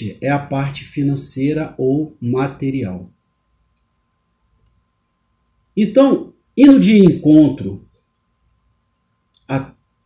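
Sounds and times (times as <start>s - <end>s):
faint tick: 3.7s - 4.0s.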